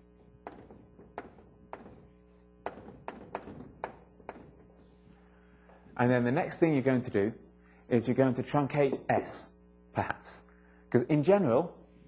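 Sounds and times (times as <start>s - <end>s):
steady hum: 0.0s - 12.0s
chalk tapping on a board: 0.4s - 4.7s.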